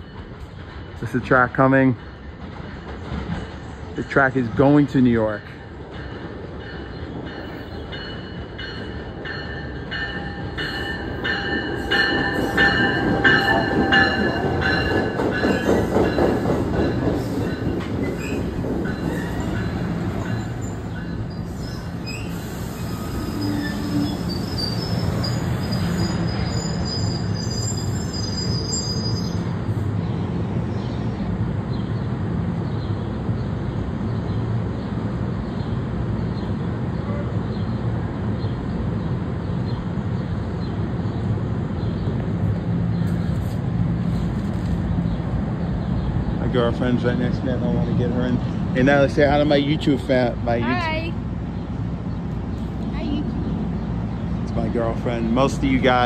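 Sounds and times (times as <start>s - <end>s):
train wheels clicking over rail joints: 0.0s - 26.1s
low rumble of standing train: 0.0s - 56.0s
high-pitched brake squeals: 20.4s - 29.5s.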